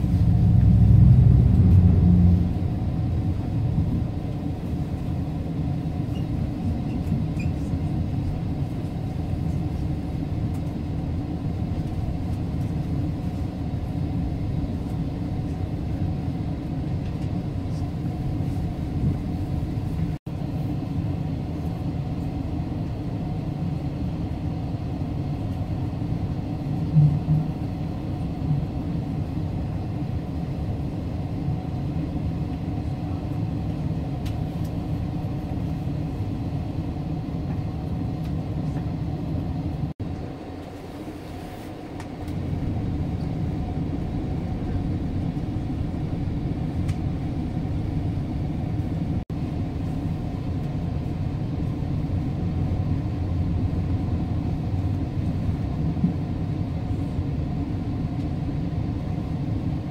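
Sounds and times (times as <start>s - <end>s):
train rumbling on tracks: 0.0s - 59.9s.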